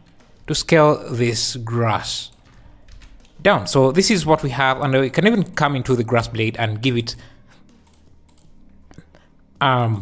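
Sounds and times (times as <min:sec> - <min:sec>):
keyboard clicks: 0:02.3 - 0:03.4, 0:07.7 - 0:09.1
computer mouse clicks: 0:07.7 - 0:09.1.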